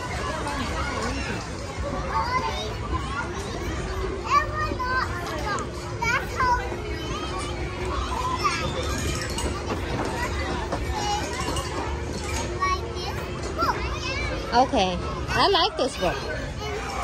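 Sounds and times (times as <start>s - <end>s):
children playing and calling out: 0.0s - 17.0s
crowd noise: 0.0s - 17.0s.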